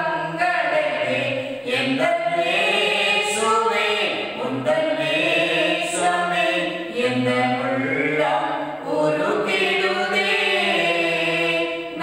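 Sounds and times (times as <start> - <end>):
man singing hymn unaccompanied: 0.0 - 12.0.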